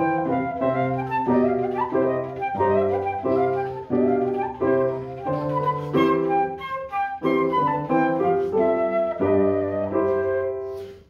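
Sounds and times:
flute melody: 0.0 - 11.0
piano accompaniment: 0.0 - 11.0.

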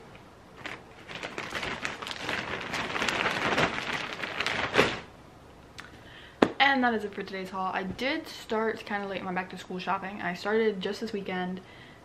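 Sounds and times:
clothes and bags rustling: 0.5 - 5.1.

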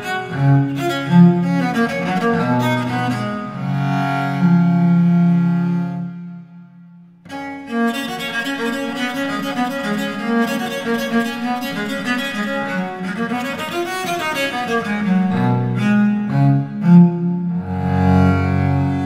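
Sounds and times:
bowed viola da gamba: 0.0 - 19.0.

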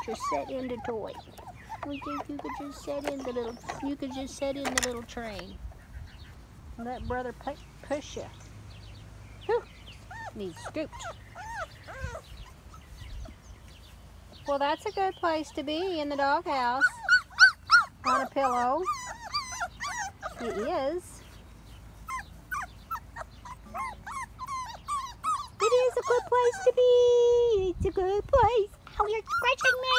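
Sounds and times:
puppies whining: 0.0 - 6.4, 9.5 - 27.4, 28.8 - 29.9.

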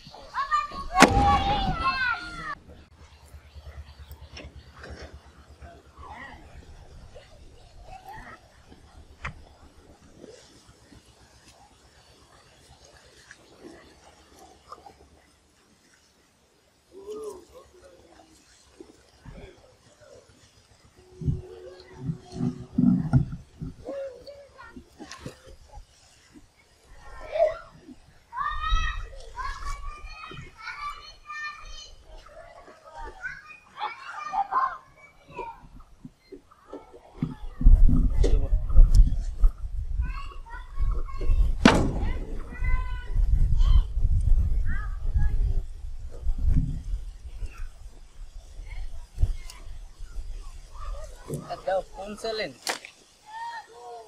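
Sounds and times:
children shouting: 0.0 - 2.6, 26.9 - 35.7, 40.0 - 43.9, 53.2 - 54.0.

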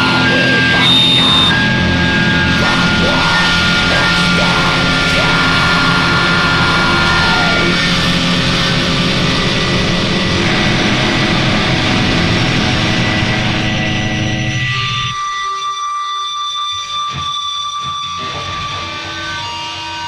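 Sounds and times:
sustained high ringing tones: 0.0 - 7.1
distorted doom metal guitars: 0.0 - 20.0.

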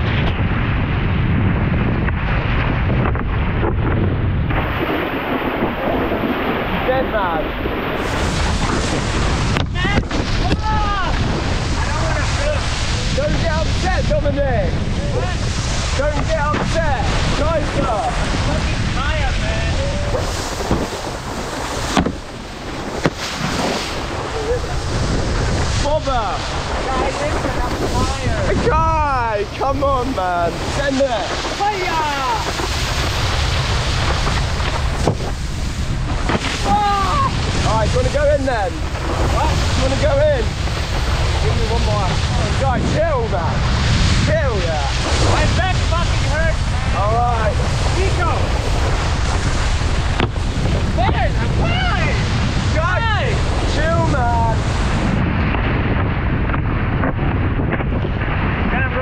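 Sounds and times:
wind rushing over microphone: 0.0 - 59.0
water rushing: 4.4 - 55.2
board knocking on ramp: 21.8 - 22.3, 50.2 - 50.4
sharp knocks: 21.9 - 22.3, 23.0 - 23.4.

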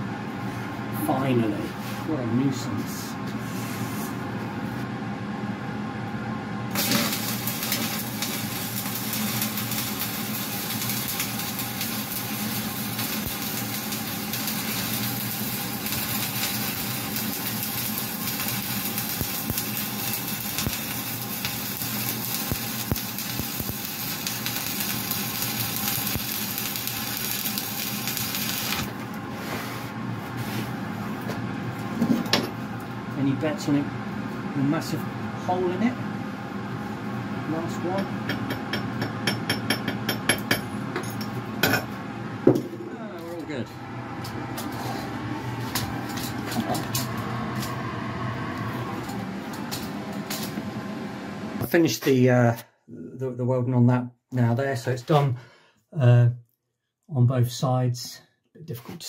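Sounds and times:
welding arc crackling: 6.7 - 29.0, 45.4 - 50.6
welding machine hum: 6.7 - 29.2, 43.0 - 51.9.

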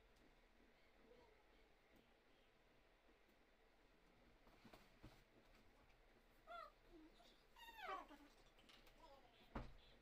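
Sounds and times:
faint high-pitched vocal cries: 6.4 - 8.3.

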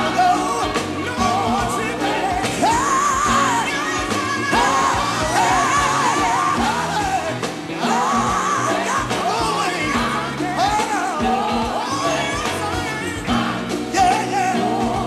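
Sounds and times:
band playing steady beat: 0.0 - 15.0.

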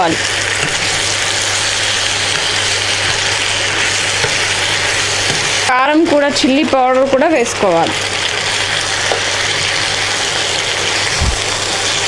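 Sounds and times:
food sizzling in a pan: 0.0 - 12.0.

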